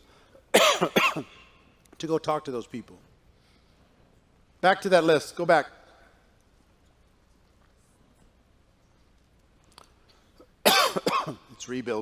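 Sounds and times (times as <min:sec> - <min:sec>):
man coughing: 0:00.5 - 0:01.6, 0:10.6 - 0:11.5.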